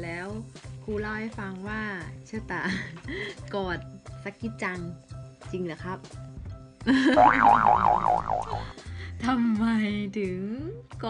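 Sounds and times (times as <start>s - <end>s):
quiet background music: 0.0s - 11.0s
cartoon boing sound effect: 7.2s - 8.7s.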